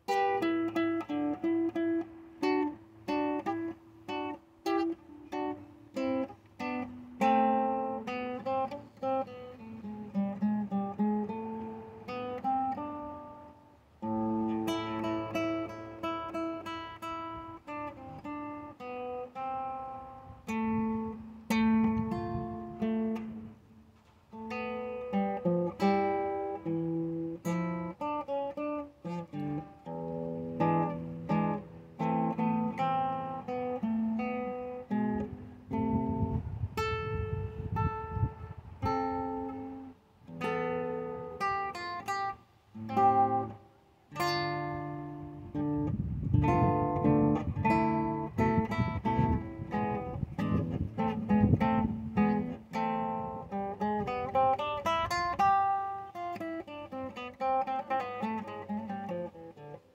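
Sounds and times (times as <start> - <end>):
flamenco acoustic guitar: 0.0 - 59.9.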